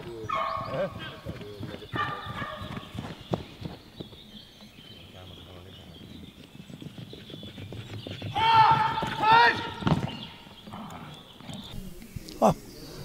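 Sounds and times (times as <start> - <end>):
dog's paws running: 0.0 - 11.7.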